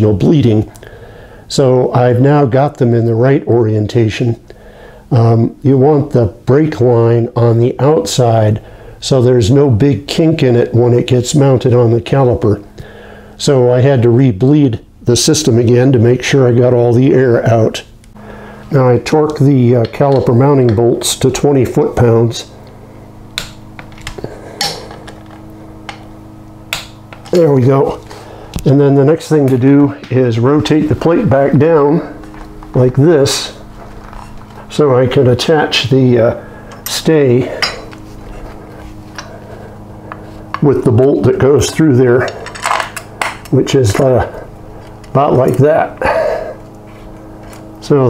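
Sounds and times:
man talking: 0:00.0 - 0:00.7, 0:01.5 - 0:04.4, 0:05.1 - 0:12.6, 0:13.4 - 0:17.9, 0:18.7 - 0:22.6, 0:27.3 - 0:33.6, 0:34.6 - 0:37.8, 0:40.6 - 0:42.4, 0:43.5 - 0:44.5, 0:45.1 - 0:46.4, 0:47.8 - 0:48.0
faint steady hum: 0:00.0 - 0:48.0.

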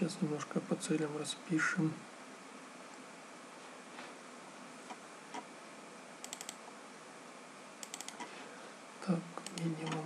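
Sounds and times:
faint room hiss: 0:00.0 - 0:10.0
computer keyboard keys clicking: 0:06.2 - 0:06.6, 0:07.8 - 0:08.3.

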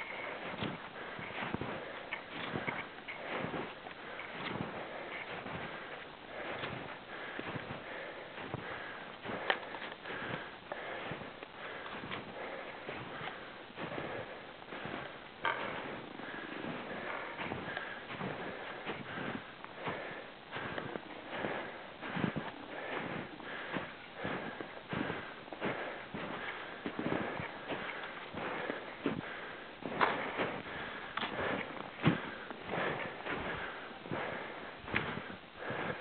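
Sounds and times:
footsteps crunching in snow: 0:00.0 - 0:36.0
heavy rasping breathing: 0:00.0 - 0:36.0.

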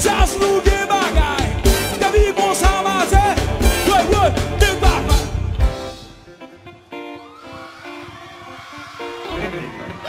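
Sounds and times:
live band sustained notes: 0:00.0 - 0:07.4.

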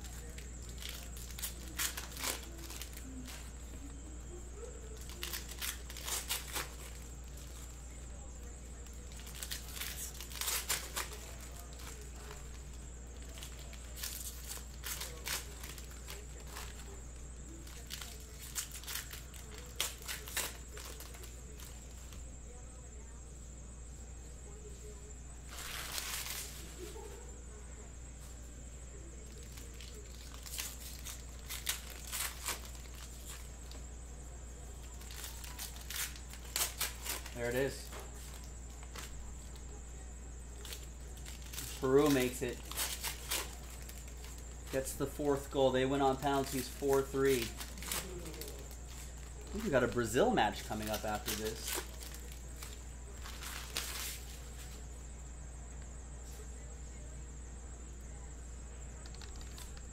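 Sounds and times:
foil wrappers crinkling and tearing: 0:00.0 - 0:03.9, 0:04.6 - 0:22.2, 0:25.4 - 0:27.1, 0:29.2 - 0:39.8, 0:40.4 - 0:54.9, 0:59.0 - 0:59.9.

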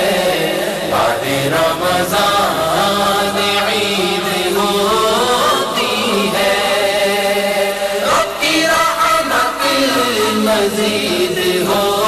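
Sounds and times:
voices chanting devotionally: 0:00.0 - 0:12.0.

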